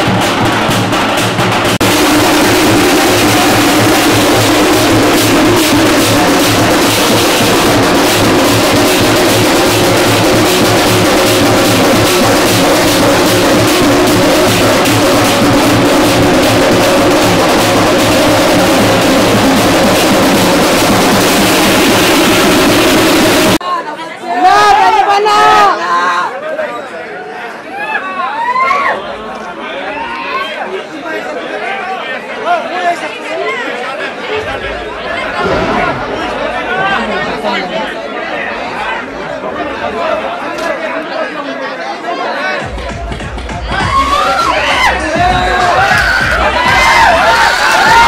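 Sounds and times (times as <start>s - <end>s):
drum band beating: 0.0s - 23.6s, 34.4s - 38.0s, 42.6s - 48.0s
crowd cheering: 0.0s - 48.0s
crowd shouting: 1.8s - 43.0s, 43.6s - 48.0s.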